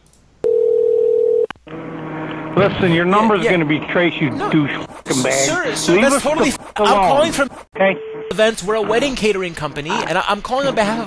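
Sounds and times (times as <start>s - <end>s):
click: 0.0s - 0.2s
telephone tone: 0.4s - 1.5s, 7.8s - 8.3s
faint phone-line hum: 0.4s - 2.4s.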